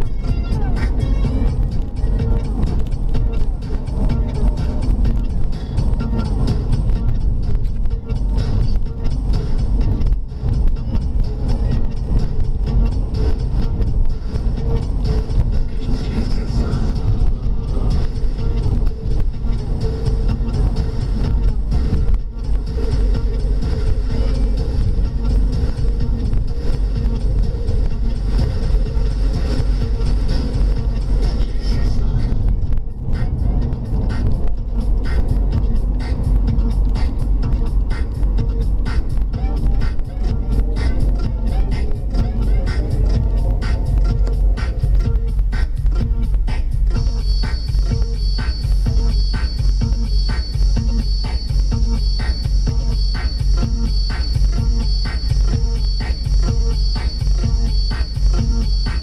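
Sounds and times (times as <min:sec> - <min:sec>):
car engine and road rumble: 0:00.0 - 0:59.0
music playing: 0:00.0 - 0:59.0.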